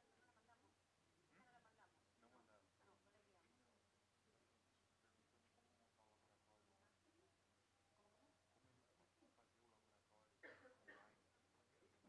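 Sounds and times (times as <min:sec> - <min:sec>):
faint distant voices murmuring: 0:00.0 - 0:12.0.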